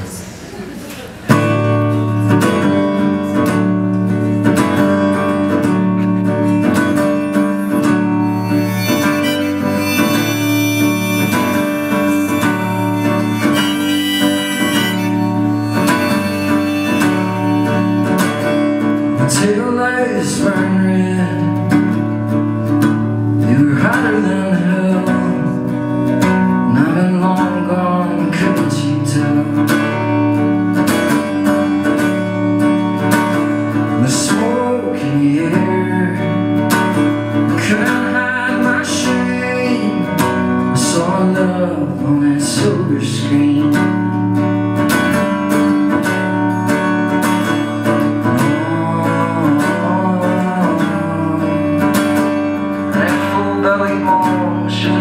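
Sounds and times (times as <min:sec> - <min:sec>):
acoustic guitar strumming: 0:01.2 - 0:55.0
man singing: 0:07.0 - 0:22.1, 0:23.3 - 0:30.1, 0:33.8 - 0:44.2, 0:48.1 - 0:55.0.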